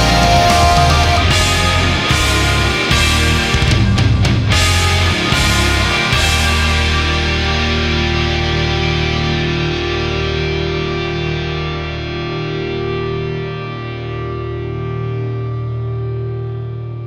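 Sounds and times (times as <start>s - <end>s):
distorted electric guitar chords: 0.0s - 17.0s.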